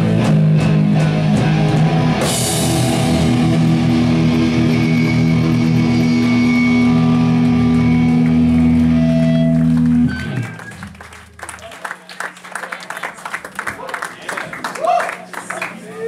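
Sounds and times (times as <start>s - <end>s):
punk band ringing chord: 0.0s - 11.5s.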